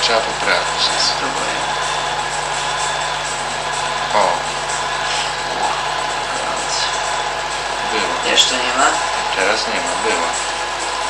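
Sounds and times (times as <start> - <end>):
film projector rattling: 0.0 - 11.0.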